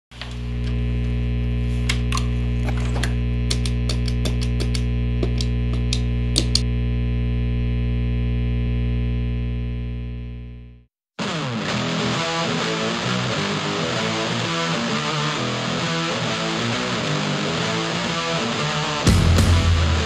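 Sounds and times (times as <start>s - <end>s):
distorted electric guitar drone: 0.2s - 20.0s
sharp clicks: 3.0s - 6.7s.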